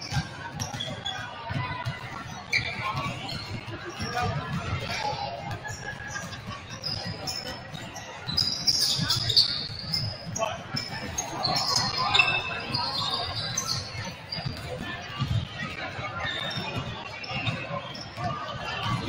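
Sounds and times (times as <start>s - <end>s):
basketballs bouncing on hardwood: 0.0s - 15.8s
sneaker squeaks: 0.0s - 19.0s
voices chattering: 0.0s - 19.0s.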